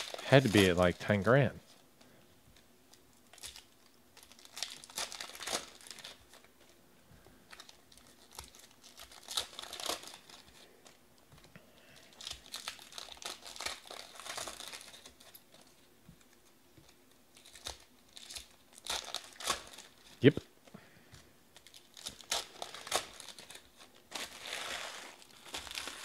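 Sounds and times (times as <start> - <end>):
foil wrappers crinkling and tearing: 0.0 - 1.3, 2.9 - 6.8, 7.4 - 11.0, 11.8 - 20.3, 21.5 - 26.0.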